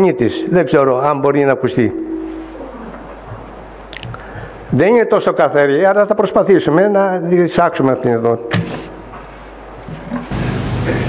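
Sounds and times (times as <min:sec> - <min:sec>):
cassette tape hiss and hum: 0:09.2 - 0:11.0.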